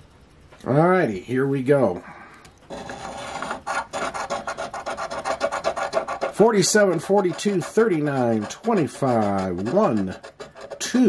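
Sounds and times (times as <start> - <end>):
coin scratching lottery ticket: 2.7 - 11.0.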